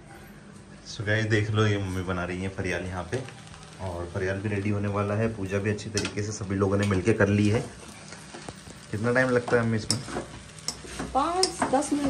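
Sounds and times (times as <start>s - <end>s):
food sizzling: 0.3s - 12.0s
spatula scraping pan: 9.4s - 12.0s
metal clicks on pan: 9.5s - 12.0s.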